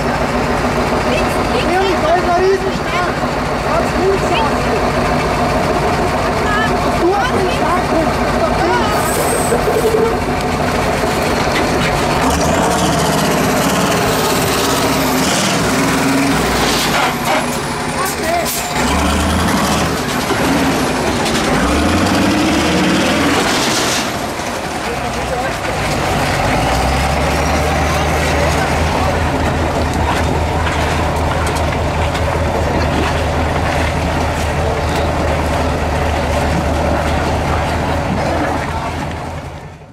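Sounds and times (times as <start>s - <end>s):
truck diesel engine revving: 0.0s - 39.9s.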